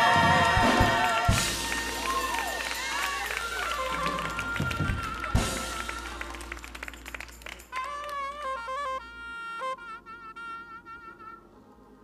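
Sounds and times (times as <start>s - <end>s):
congregation clapping: 0.0s - 8.5s.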